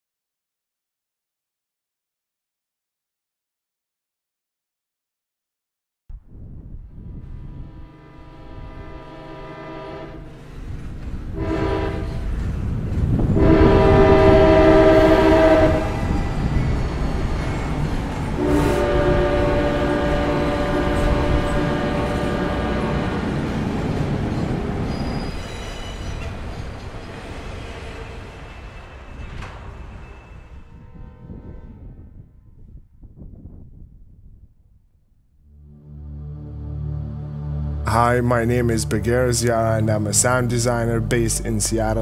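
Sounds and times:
train horn blasts: 7.2 - 16.2, 18.4 - 23.7
train wheels rumbling on rails: 10.1 - 31.8.

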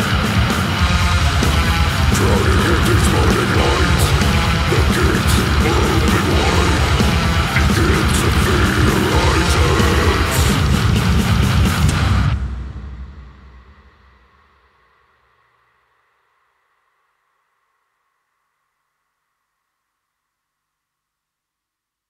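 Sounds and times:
death metal band playing: 0.0 - 14.0.

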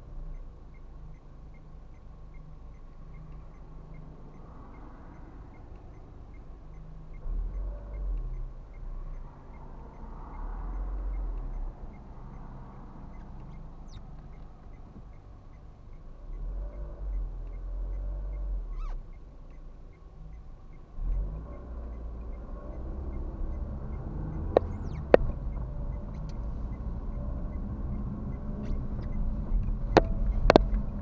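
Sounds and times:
car engine and road rumble: 0.0 - 31.0
sharp clicks: 0.2 - 31.0.

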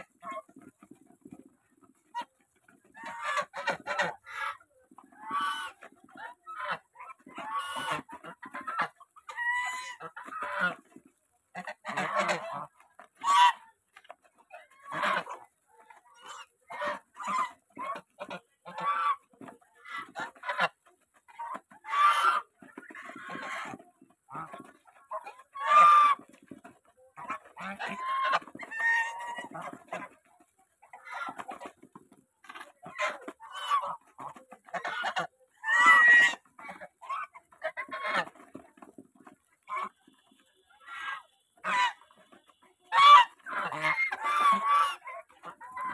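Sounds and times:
geese honking: 0.0 - 45.9.

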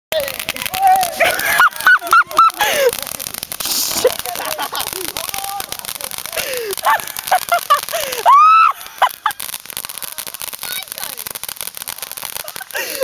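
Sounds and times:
firework crackling and hissing: 0.1 - 13.0
boys yelling and laughing: 0.2 - 13.0
high laughing shrieks: 0.3 - 9.6.

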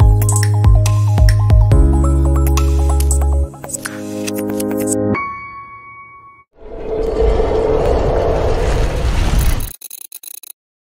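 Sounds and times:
rushing whoosh with low rumble: 6.6 - 9.7.

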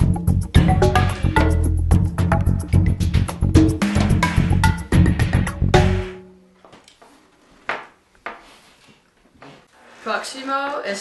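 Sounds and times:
baking sheet scraping on table: 9.6 - 10.8
young woman speaking: 10.0 - 11.0.

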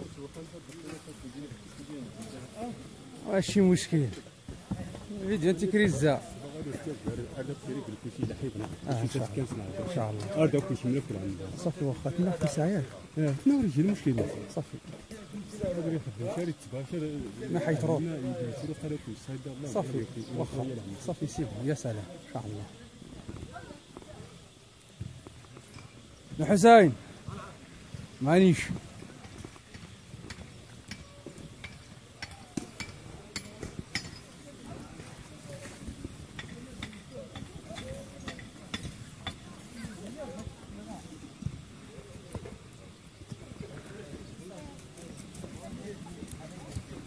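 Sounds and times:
distant people talking: 0.0 - 47.0
faint voices: 0.0 - 47.0.

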